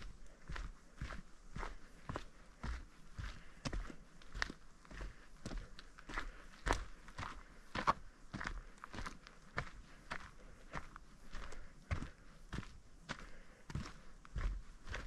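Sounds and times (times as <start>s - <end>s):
footsteps on dirt trail: 0.0s - 15.0s.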